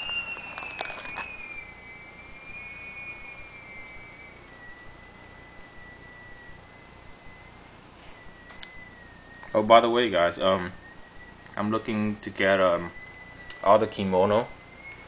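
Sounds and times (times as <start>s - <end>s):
plastic binder sleeves crackling: 0.0s - 1.4s
faint high-pitched whine: 0.0s - 15.0s.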